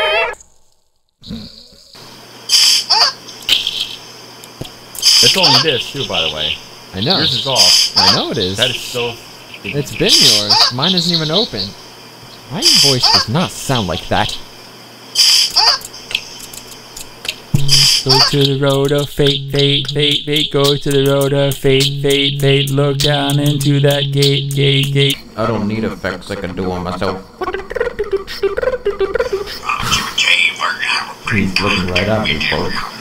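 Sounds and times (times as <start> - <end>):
faint room hiss: 0.0 - 33.0
small ticks: 15.2 - 17.4, 18.1 - 25.2
low steady hum: 15.8 - 30.1
robotic synthesized voice: 17.6 - 25.7
high-pitched distorted laughter: 18.0 - 18.5, 27.4 - 30.1.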